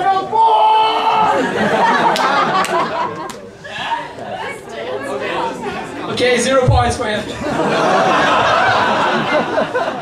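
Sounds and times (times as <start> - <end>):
indistinct chatter of voices: 0.8 - 9.7.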